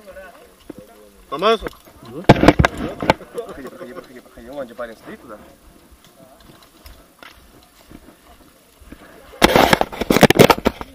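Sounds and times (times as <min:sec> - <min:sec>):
camera handling crackling: 0:09.4 - 0:10.9.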